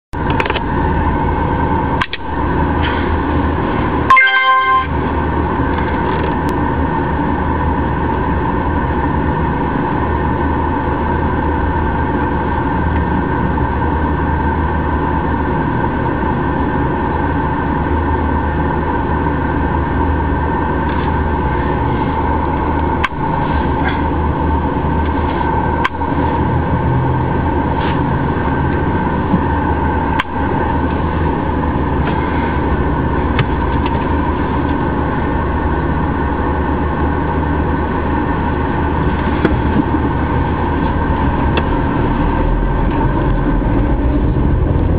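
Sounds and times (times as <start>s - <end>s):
car cabin rumble and hum: 0.2s - 44.9s
short loud beep: 4.1s - 5.0s.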